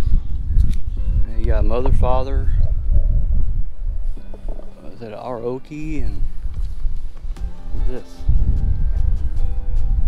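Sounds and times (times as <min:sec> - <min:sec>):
faint background music: 0:00.0 - 0:10.0
wind buffeting microphone: 0:00.0 - 0:10.0.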